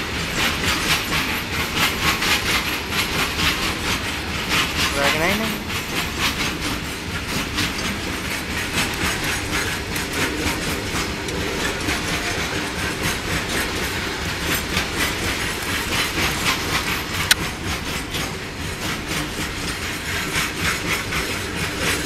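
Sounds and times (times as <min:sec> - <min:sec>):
goods train rumbling and rattling: 0:00.0 - 0:22.0
wheels clicking over rail joints: 0:00.0 - 0:22.0.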